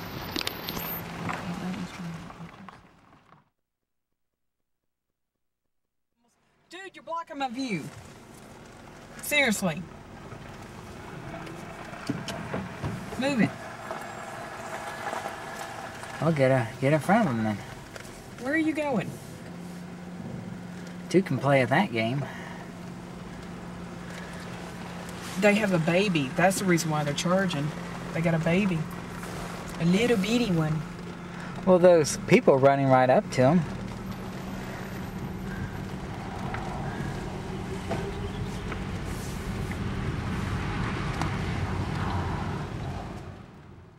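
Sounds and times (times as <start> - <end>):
car engine humming: 0.0 - 3.4, 6.7 - 43.9
tyre hiss on wet road: 29.0 - 30.6, 38.4 - 41.1.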